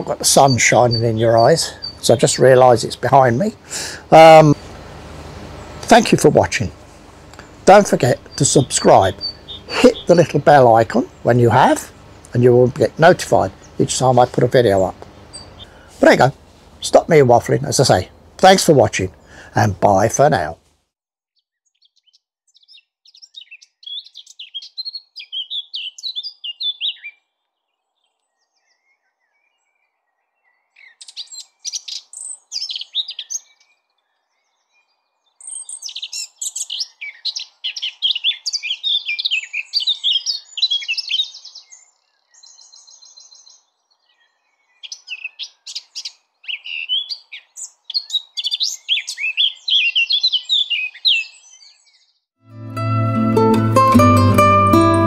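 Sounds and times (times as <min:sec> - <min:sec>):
bird trill: 0:00.0 - 0:03.5, 0:07.7 - 0:12.7, 0:14.8 - 0:15.8, 0:21.4 - 0:52.3
bird warbling song: 0:00.0 - 0:20.6, 0:21.4 - 0:52.3.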